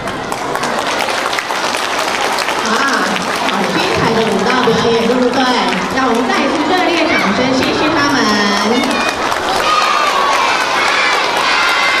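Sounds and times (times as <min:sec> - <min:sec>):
children shouting and cheering: 0:06.8 - 0:07.7, 0:08.5 - 0:12.0.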